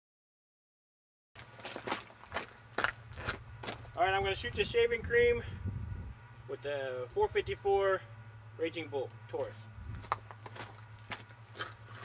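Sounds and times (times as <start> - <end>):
footsteps crunching on gravel: 1.4 - 4.4, 9.4 - 12.0
low steady rumble: 1.4 - 12.0.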